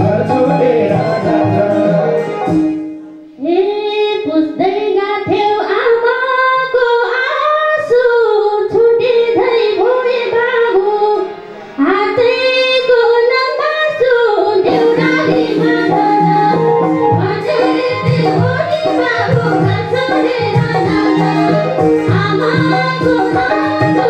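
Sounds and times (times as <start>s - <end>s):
woman singing folk song: 3.3s - 24.0s.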